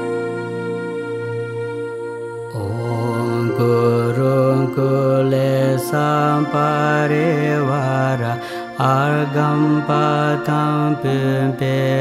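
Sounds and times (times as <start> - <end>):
man chanting: 2.5 - 12.0.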